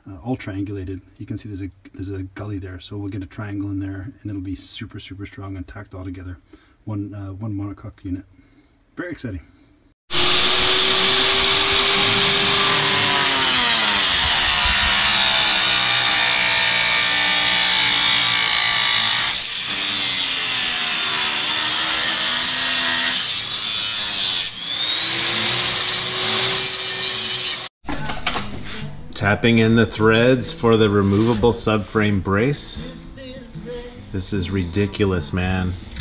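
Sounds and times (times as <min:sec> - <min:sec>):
angle grinder whining on steel: 0:10.1 - 0:27.7.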